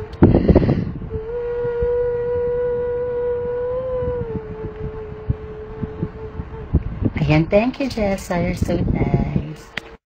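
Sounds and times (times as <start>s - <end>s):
woman singing a long note: 0.0s - 7.2s.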